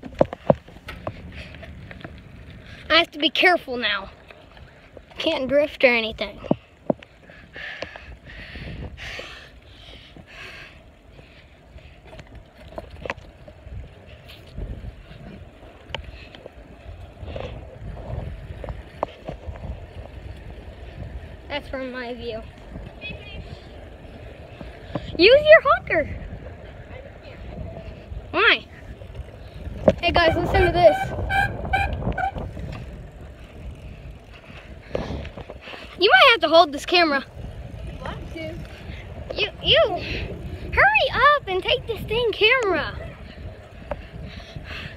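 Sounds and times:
wind buffeting microphone: 0.0 - 44.9.

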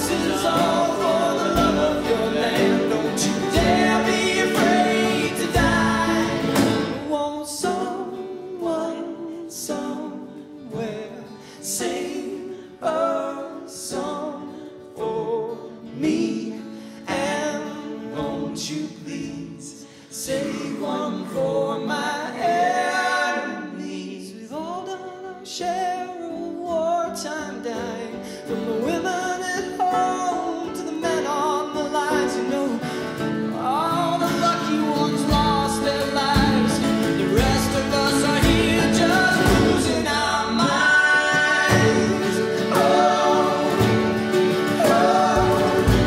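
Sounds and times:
men singing in harmony: 0.0 - 25.6, 28.5 - 46.0
acoustic string instruments: 0.0 - 46.0
low drum beat: 43.7 - 46.0.

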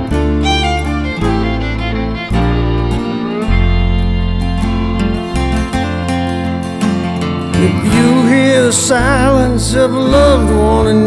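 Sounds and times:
band instrumental with guitar: 0.0 - 11.0
sustained bass notes: 0.0 - 11.0.

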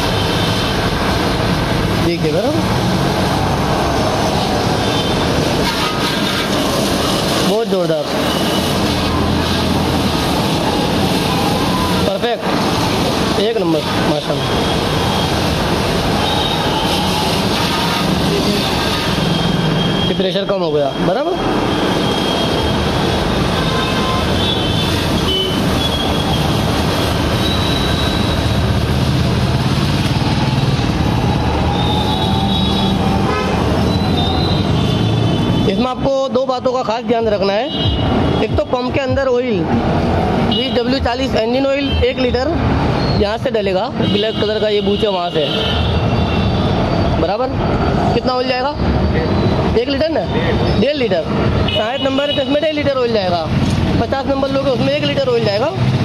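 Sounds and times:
water jet spraying: 0.0 - 20.1, 21.4 - 35.6
vehicle horns tooting: 4.8 - 7.6, 16.1 - 22.8, 23.4 - 26.6, 31.7 - 35.8, 37.6 - 38.7, 51.6 - 52.7
pressure washer jet hissing: 14.4 - 19.8.

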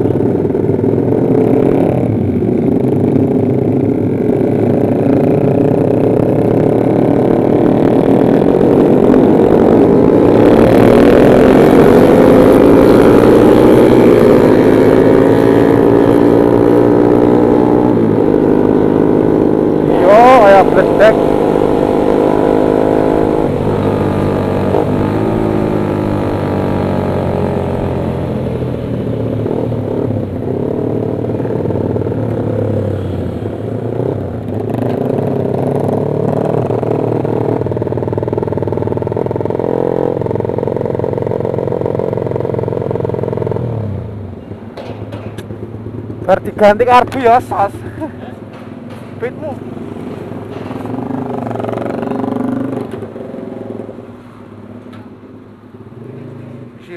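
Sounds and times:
motorcycle engine running: 0.0 - 56.9.

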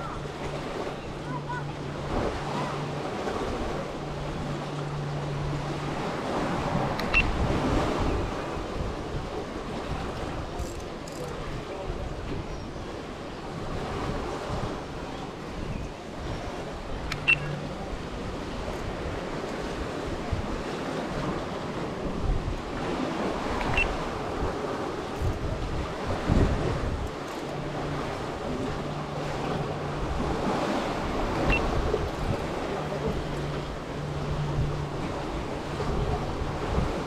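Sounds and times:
sea water sloshing against pier: 0.0 - 37.0
wind buffeting microphone: 0.0 - 37.0.

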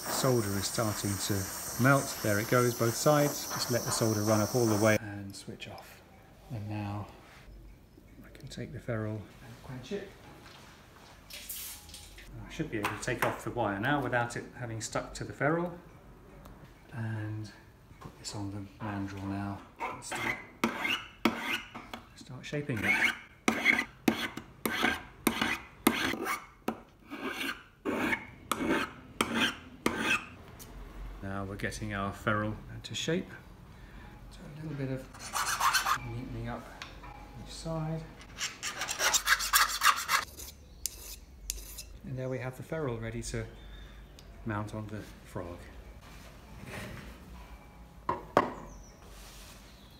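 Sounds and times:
file rasping on metal: 19.8 - 21.7, 22.8 - 26.5, 27.1 - 30.3, 35.2 - 36.0, 38.3 - 42.0.

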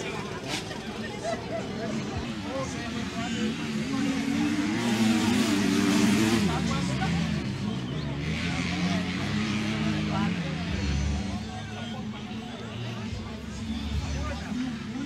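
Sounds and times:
motocross bike engines revving: 0.0 - 15.0.

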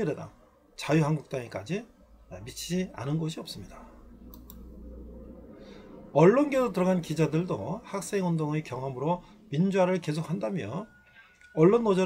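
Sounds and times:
low steady hum: 0.0 - 12.0
faint clicks: 4.2 - 4.7.

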